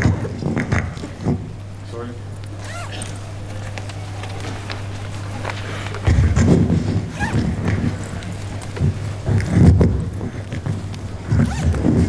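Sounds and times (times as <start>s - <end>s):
lapel microphone rubbing and bumping: 6.0s - 8.2s, 8.8s - 12.0s.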